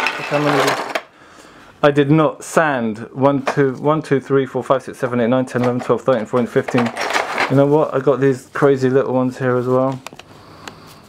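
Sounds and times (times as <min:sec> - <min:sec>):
plastic pieces clattering in a box: 0:00.0 - 0:01.1, 0:06.7 - 0:07.6.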